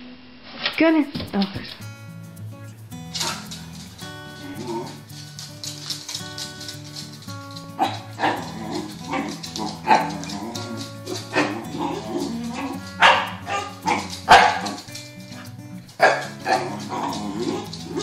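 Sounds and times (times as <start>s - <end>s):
music with plucked notes: 1.6s - 18.0s
dog barking: 3.1s - 18.0s.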